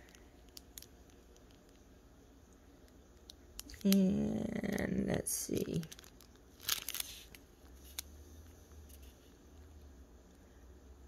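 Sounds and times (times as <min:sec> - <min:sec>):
plastic bag crinkling: 0:00.0 - 0:01.8, 0:03.2 - 0:08.2.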